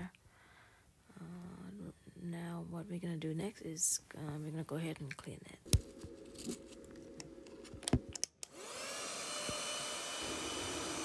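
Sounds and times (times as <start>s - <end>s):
handheld vacuum cleaner whirring: 6.0s - 11.0s.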